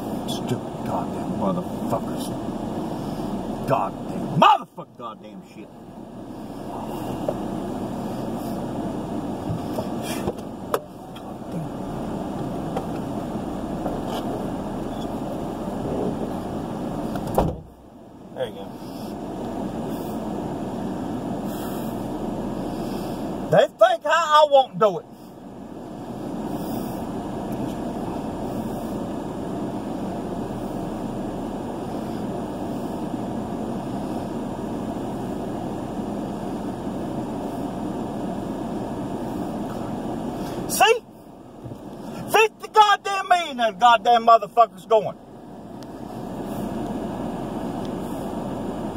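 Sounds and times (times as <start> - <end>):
road and engine noise in car: 0.0 - 48.9.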